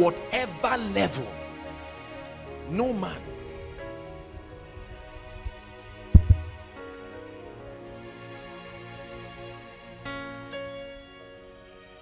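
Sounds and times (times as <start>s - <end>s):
background music sustained chords: 0.0s - 12.0s
low thumps: 4.4s - 6.8s.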